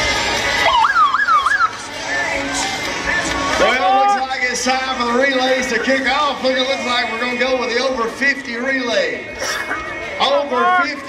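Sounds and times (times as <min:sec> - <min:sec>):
siren wailing up and down: 0:00.6 - 0:01.8.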